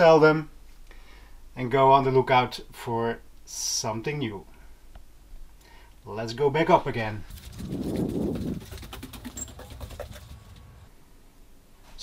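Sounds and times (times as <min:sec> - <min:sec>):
footsteps on stairs: 0:08.1 - 0:10.9.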